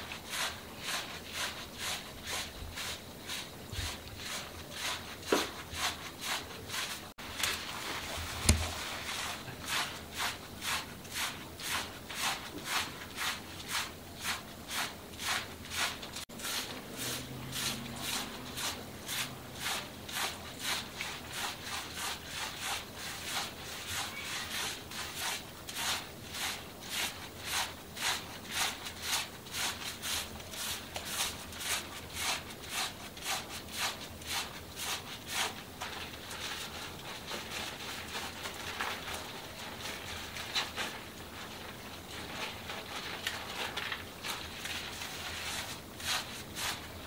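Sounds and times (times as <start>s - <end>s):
fingers scrubbing wet hair: 0.0s - 36.4s, 44.3s - 47.0s.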